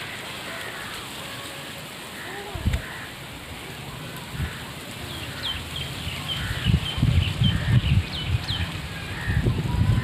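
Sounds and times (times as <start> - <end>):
wind buffeting microphone: 2.5 - 10.0.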